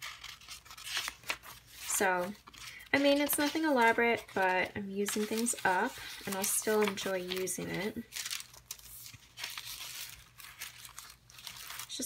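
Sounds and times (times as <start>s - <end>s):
paper pages rustling: 0.0s - 12.0s.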